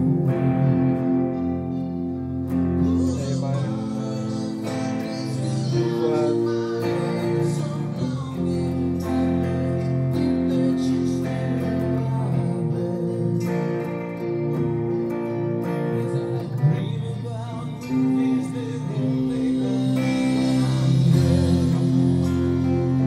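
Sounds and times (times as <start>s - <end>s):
electric guitar chords: 0.0s - 23.0s.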